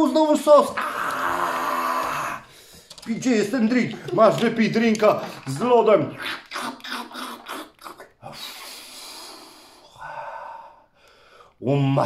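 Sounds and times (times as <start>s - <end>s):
breathy mouth gulps: 3.9s - 8.8s
breathy exhale: 8.4s - 11.5s.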